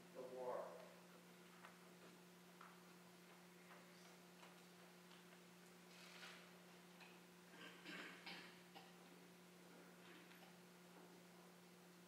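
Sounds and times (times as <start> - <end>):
low hum of room tone: 0.0 - 12.0.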